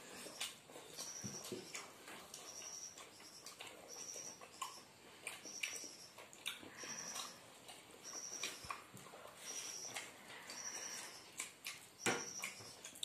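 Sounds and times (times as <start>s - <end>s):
chewing and mouth clicks: 0.2s - 13.0s
faint high-pitched chirp: 0.3s - 7.4s, 8.0s - 8.8s, 9.4s - 11.4s, 12.0s - 13.0s.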